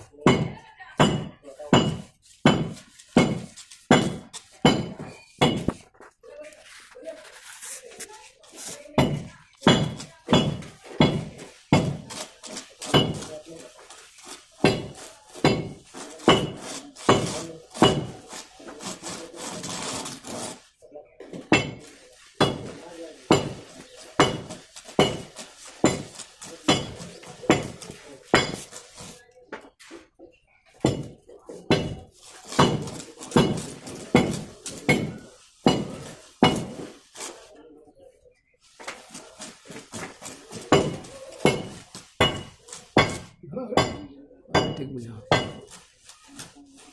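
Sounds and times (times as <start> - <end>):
trowel scraping: 1.5 - 30.1, 30.8 - 37.6, 45.2 - 46.9
trowel clinking on metal: 8.8 - 18.5, 21.5 - 29.1.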